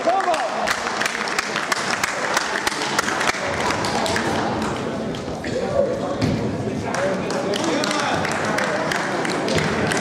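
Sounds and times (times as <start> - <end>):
spectators clapping: 0.0 - 5.3, 6.9 - 10.0
background murmur: 0.0 - 10.0.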